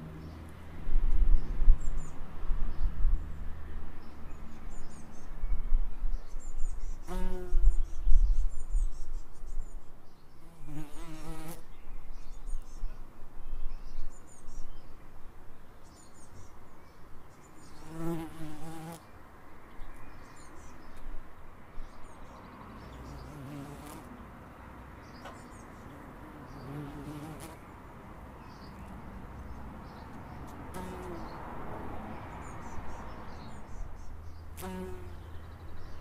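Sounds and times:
bumblebee buzzing in flight: 0:17.8 - 0:19.0, 0:23.1 - 0:24.1, 0:26.2 - 0:27.6, 0:30.7 - 0:31.2, 0:34.6 - 0:35.2.

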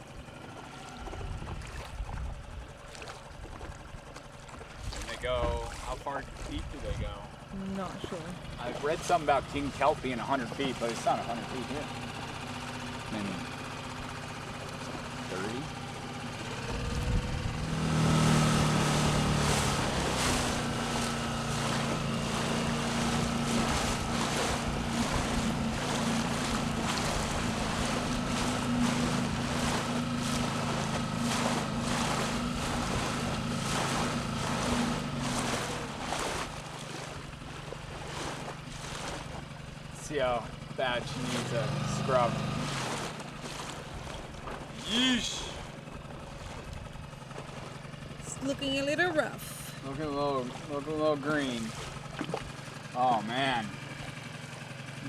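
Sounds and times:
outboard motor droning: 0:00.0 - 0:55.0.

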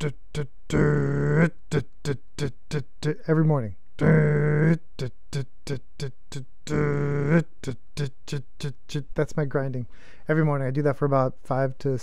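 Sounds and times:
man imitating grinder with voice: 0:00.0 - 0:03.4, 0:04.0 - 0:09.2.

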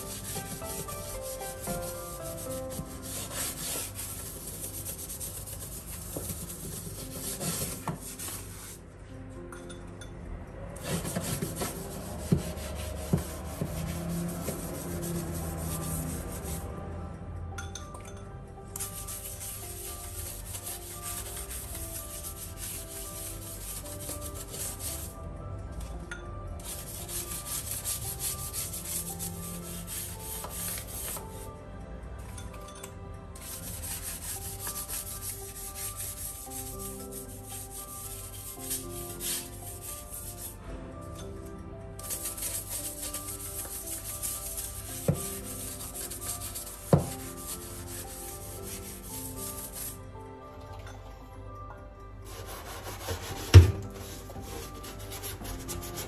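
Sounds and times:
brush scrubbing tiles: 0:00.0 - 0:08.8, 0:10.8 - 0:16.6, 0:18.8 - 0:25.2, 0:26.6 - 0:31.3, 0:33.4 - 0:40.6, 0:42.0 - 0:50.0, 0:52.3 - 0:56.0.

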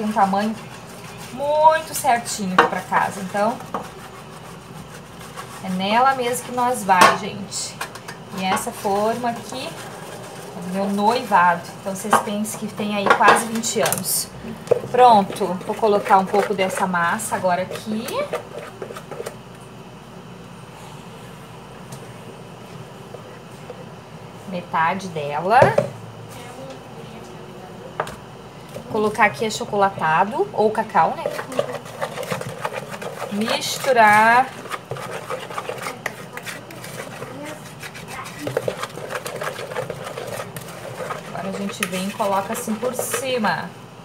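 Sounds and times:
spatula scraping plastic bowl: 0:00.0 - 0:19.4, 0:28.9 - 0:43.7
low background hum: 0:00.0 - 0:44.0.

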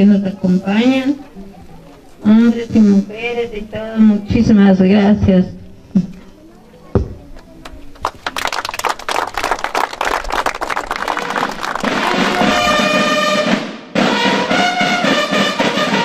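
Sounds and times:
brass horns holding notes: 0:11.0 - 0:16.0
snare drum roll: 0:11.1 - 0:16.0.

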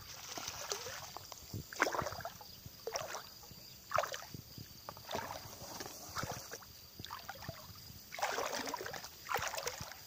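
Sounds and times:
water splashing from swimming: 0:00.0 - 0:04.4, 0:05.0 - 0:10.0.

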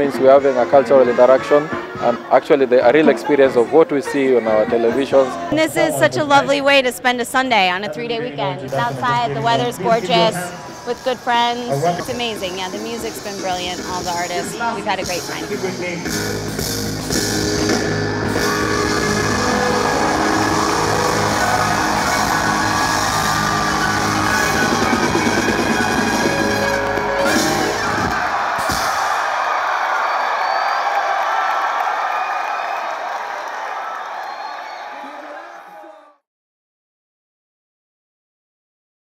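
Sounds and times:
live band playing: 0:07.2 - 0:29.2
crowd cheering and whooping: 0:17.0 - 0:36.2.

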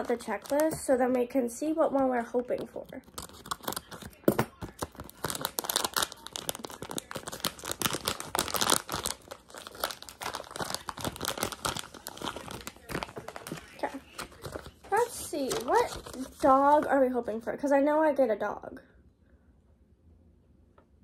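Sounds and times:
plastic wrapper crinkling and tearing: 0:00.0 - 0:01.2, 0:02.4 - 0:16.9.

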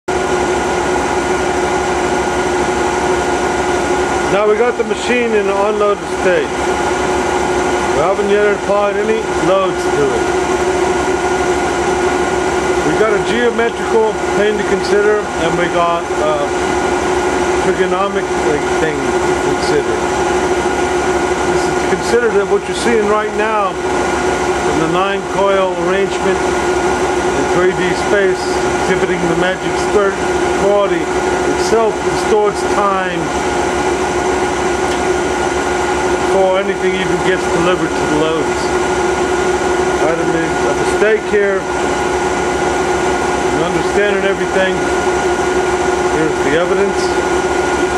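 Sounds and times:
generator humming and whining: 0:00.0 - 0:47.9.

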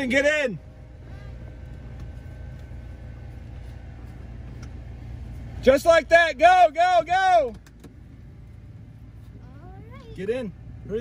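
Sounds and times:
engine idling low: 0:00.0 - 0:11.0
man calling out: 0:05.7 - 0:07.6.

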